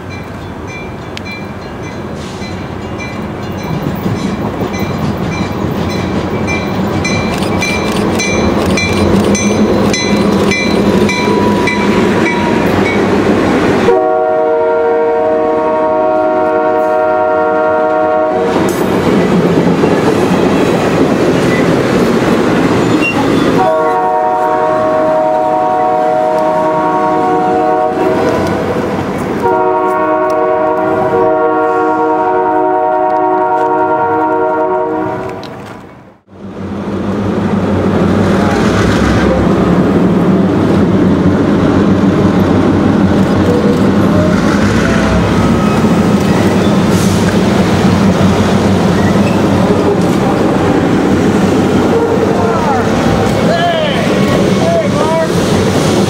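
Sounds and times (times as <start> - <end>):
train passing at speed: 0.0 - 56.0
train air horn blasts: 13.9 - 18.7, 23.5 - 28.8, 29.4 - 35.4.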